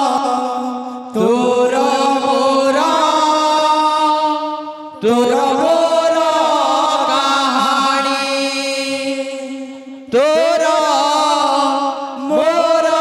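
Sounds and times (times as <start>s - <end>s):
devotional singing: 0.0s - 13.0s.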